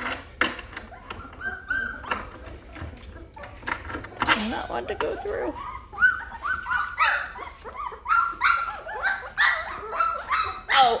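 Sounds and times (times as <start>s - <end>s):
puppies whimpering and squealing: 0.0s - 11.0s.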